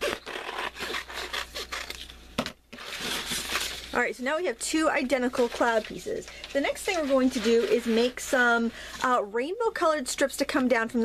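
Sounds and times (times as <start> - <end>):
paper rustling and scraping: 0.0 - 4.0, 5.1 - 9.2.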